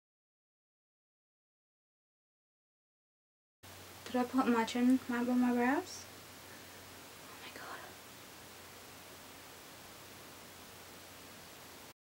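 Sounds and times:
low room hiss: 3.6s - 12.0s
woman whispering: 7.2s - 8.0s.

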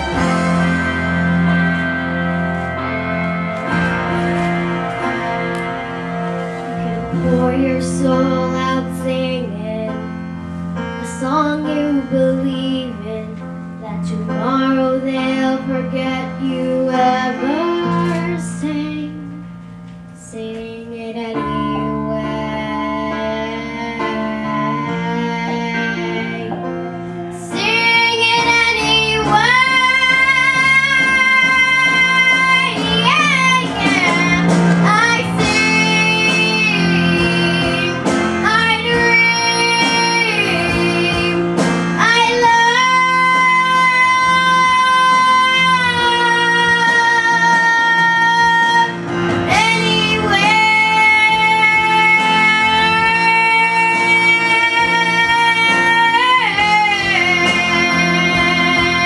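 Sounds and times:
girl singing into microphone: 0.0s - 59.0s
instrumental backing music: 0.0s - 59.0s.

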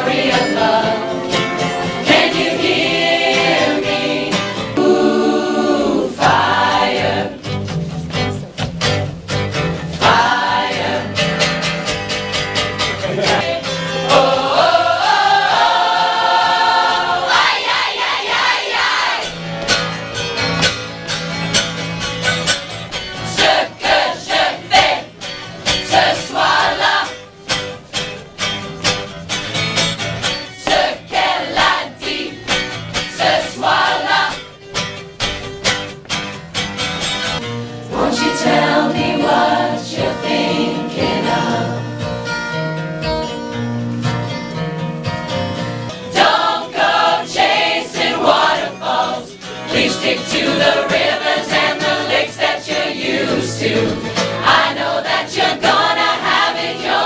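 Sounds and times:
large choir singing: 0.0s - 7.7s, 10.0s - 11.6s, 13.1s - 19.4s, 23.2s - 27.2s, 30.6s - 34.5s, 37.9s - 42.1s, 46.1s - 57.0s
acoustic guitar strumming: 0.0s - 57.0s.

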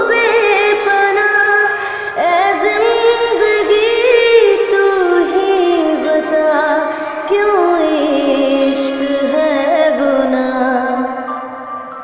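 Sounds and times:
woman singing slow ornamented melody: 0.0s - 12.0s.

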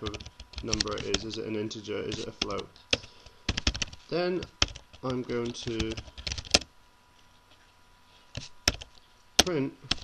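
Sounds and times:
typing on computer keyboard: 0.0s - 1.3s, 2.1s - 4.0s, 4.6s - 6.7s, 8.7s - 10.0s.

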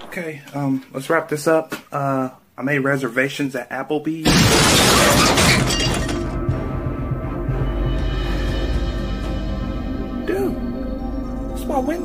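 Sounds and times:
window glass shattering: 4.2s - 6.5s
music playing: 6.2s - 12.0s.

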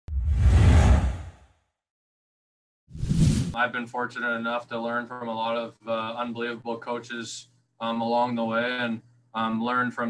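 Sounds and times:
whoosh with low rumble: 0.1s - 1.4s.

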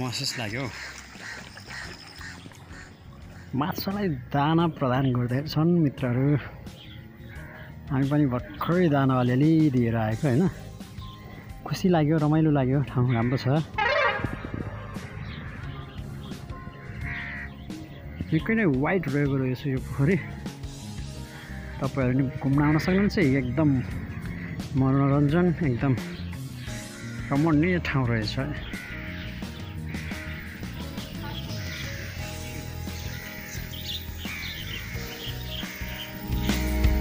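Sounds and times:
song backing music: 2.5s - 37.0s
distant duck quacks: 16.8s - 17.6s, 28.6s - 32.4s.

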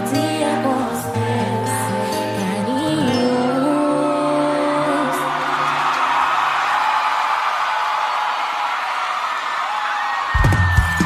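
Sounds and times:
crowd cheering and screaming: 3.1s - 11.0s
band drums and bass: 10.4s - 11.0s.

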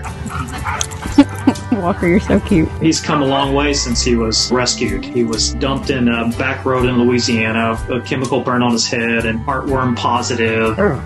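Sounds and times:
dog barking and yipping: 0.0s - 1.2s.

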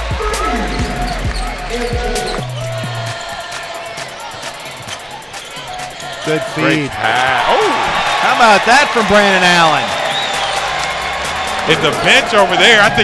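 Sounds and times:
arena music: 0.0s - 13.0s
crowd noise: 0.0s - 13.0s.

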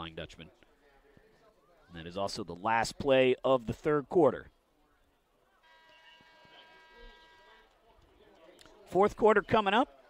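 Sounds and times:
faint stadium horn blast: 5.6s - 7.8s.

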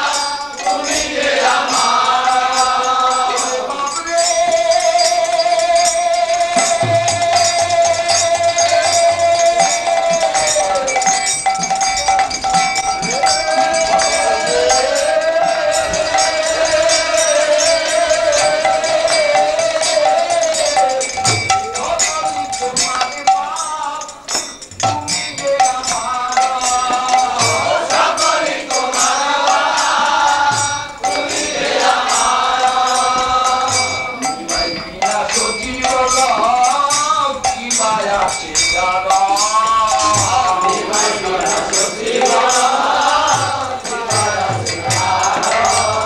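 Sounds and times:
devotional singing: 0.0s - 46.0s
jingling percussion beat: 0.0s - 46.0s
metal hand cymbals ringing: 0.0s - 46.0s.

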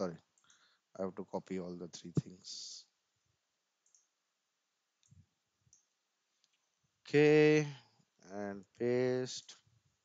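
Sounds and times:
faint computer mouse clicks: 3.8s - 4.1s.

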